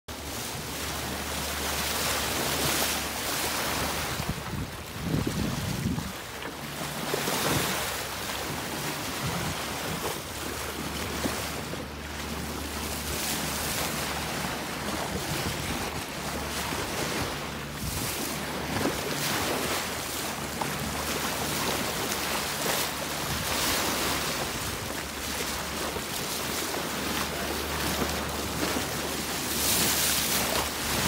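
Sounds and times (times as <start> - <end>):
water splashing along a hull: 0.1 - 31.0
wind buffeting the microphone: 3.6 - 31.0.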